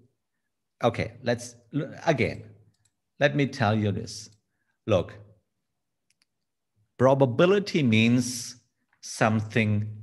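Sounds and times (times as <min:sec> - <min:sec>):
man speaking: 0:00.8 - 0:02.6, 0:03.2 - 0:05.3, 0:07.0 - 0:10.0.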